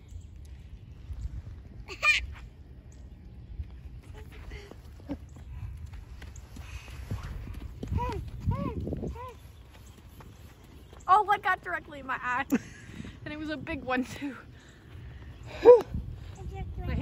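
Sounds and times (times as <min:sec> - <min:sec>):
wind rumble on microphone: 0:00.0 - 0:17.0
footsteps on snow: 0:05.9 - 0:11.5.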